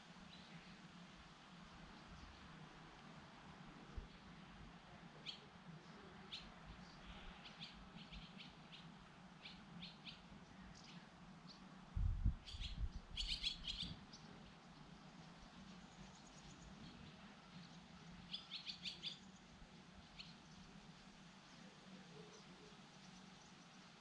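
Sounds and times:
faint bird chirps: 5.1s - 11.7s, 12.3s - 14.8s, 15.8s - 19.5s, 20.1s - 20.7s.

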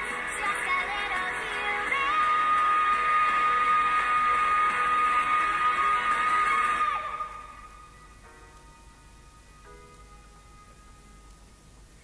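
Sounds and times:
pop song: 0.0s - 7.8s.

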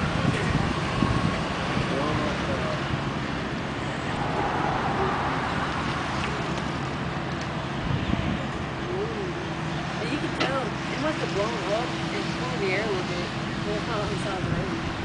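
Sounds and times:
low engine hum: 0.0s - 15.0s.

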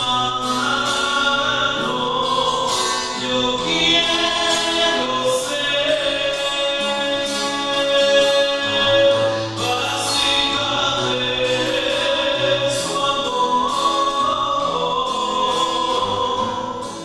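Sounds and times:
choir singing a hymn: 0.0s - 16.9s.

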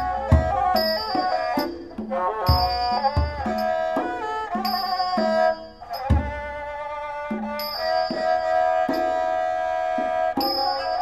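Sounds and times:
hand drum strokes: 0.0s - 11.0s
high ringing cymbal: 0.0s - 11.0s
spike fiddle bowing melody: 0.0s - 11.0s.

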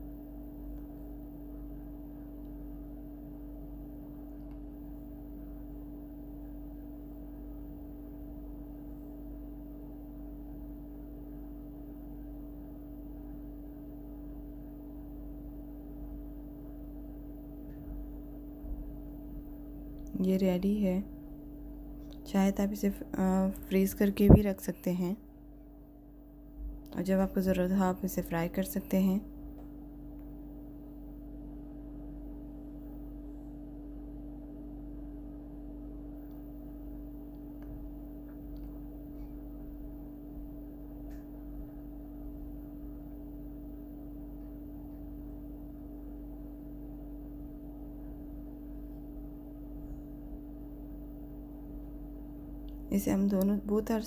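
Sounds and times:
steady background hum: 0.0s - 54.0s.

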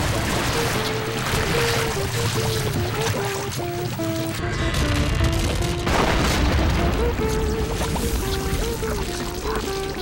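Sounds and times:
cartoon music melody: 0.0s - 10.0s
rushing flood sound effect: 0.0s - 10.0s.

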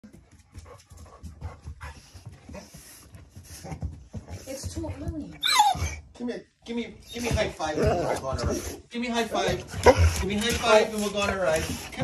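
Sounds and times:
paws tapping on floor: 0.0s - 6.0s, 7.1s - 12.0s
dog panting: 0.0s - 6.1s, 7.1s - 12.0s.

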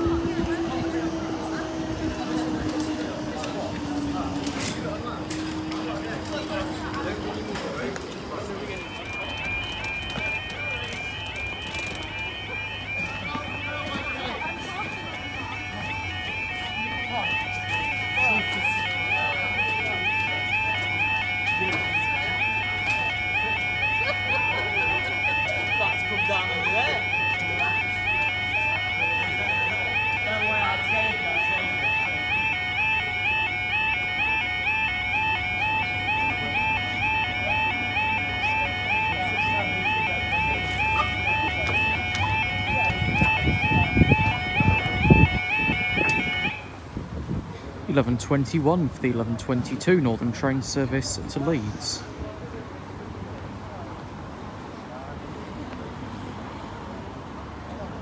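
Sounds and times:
level crossing two-tone warning alarm: 0.0s - 46.8s.

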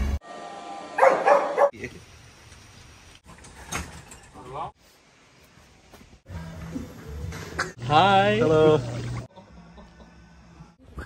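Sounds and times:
dog barking: 1.0s - 1.8s.

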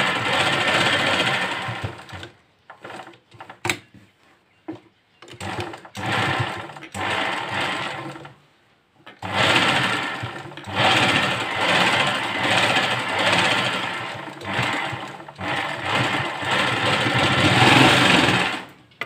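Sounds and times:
sewing machine stitching: 0.0s - 3.6s, 5.3s - 8.4s, 9.1s - 18.8s.

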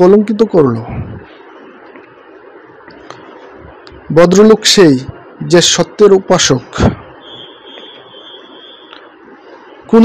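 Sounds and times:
steady low hiss: 0.0s - 10.0s
thin high-pitched tone: 7.2s - 9.1s.

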